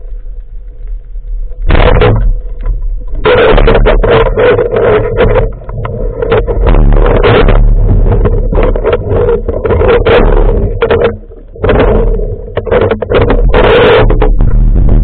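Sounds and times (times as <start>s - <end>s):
muffled underwater hum: 0.0s - 15.0s
knocks and rushes of water: 1.4s - 15.0s.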